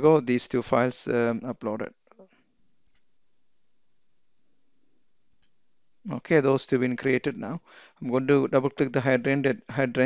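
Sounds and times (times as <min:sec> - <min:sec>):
faint computer mouse clicks: 0:02.8 - 0:03.1.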